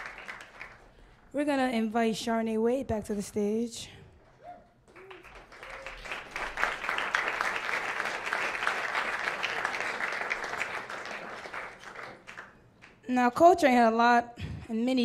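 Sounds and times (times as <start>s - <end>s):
audience applauding: 0.0s - 1.1s, 4.9s - 13.0s.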